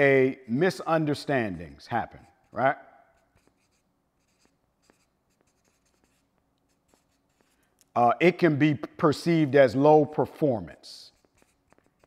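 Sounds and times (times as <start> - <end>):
marker scratching on paper: 1.9 - 7.7, 11.1 - 12.0.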